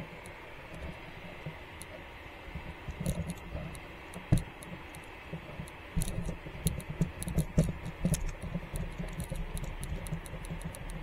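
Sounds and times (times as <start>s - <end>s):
faint outdoor hiss: 0.0s - 11.0s.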